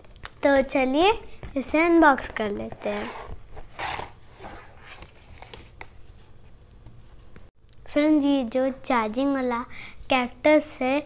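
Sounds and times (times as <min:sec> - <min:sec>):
cardboard box rustling and scraping: 0:02.8 - 0:05.6.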